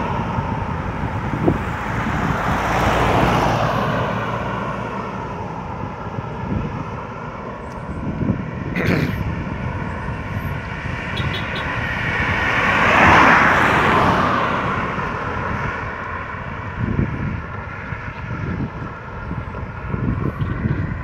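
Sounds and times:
background traffic hum: 0.0s - 21.0s
car passing by: 0.0s - 21.0s.

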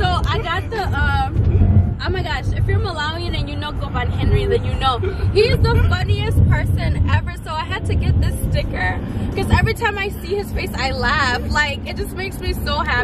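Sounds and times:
road rumble inside moving car: 0.0s - 13.0s.

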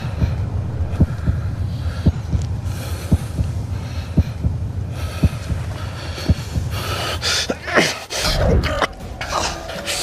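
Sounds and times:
heartbeat thuds: 0.0s - 7.3s
steady low hum: 0.0s - 10.0s.

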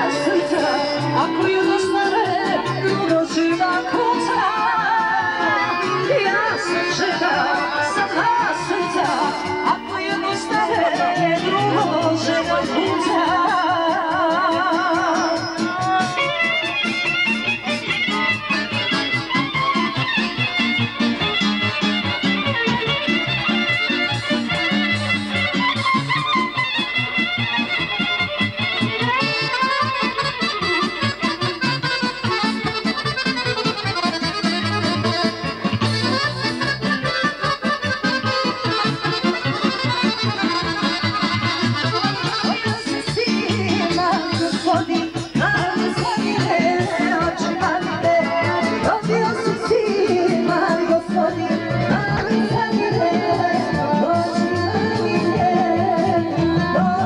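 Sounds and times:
accordion: 0.0s - 57.0s
violin: 0.0s - 57.0s.

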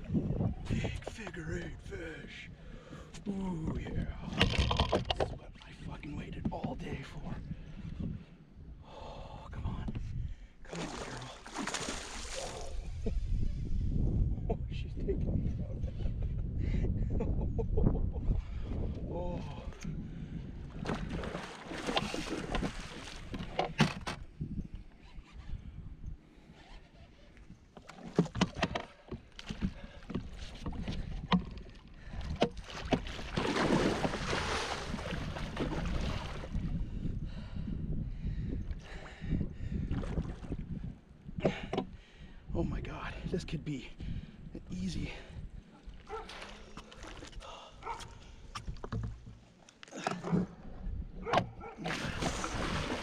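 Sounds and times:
water splashing and sloshing: 10.6s - 13.1s, 20.6s - 24.2s, 27.0s - 36.8s, 39.8s - 40.8s, 45.6s - 53.0s.

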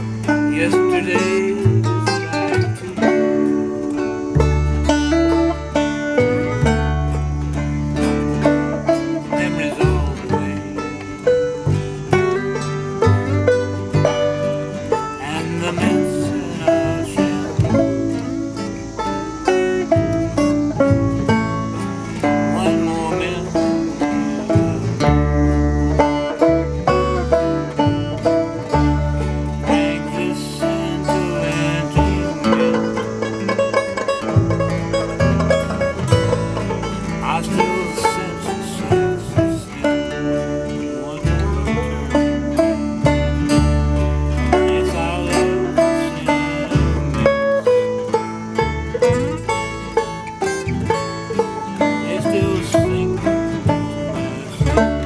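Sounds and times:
banjo picking: 0.0s - 55.0s
strummed acoustic guitars: 0.0s - 55.0s
upright double bass: 0.0s - 55.0s.

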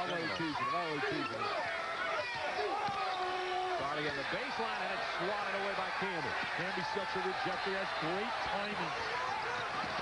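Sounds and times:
arena crowd noise: 0.0s - 10.0s
man commentating: 2.6s - 9.7s.

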